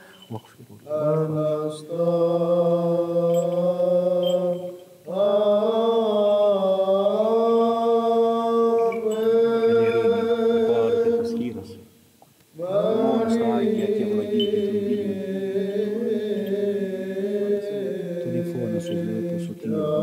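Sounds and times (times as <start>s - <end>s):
men chanting: 0.9s - 11.8s, 12.6s - 20.0s.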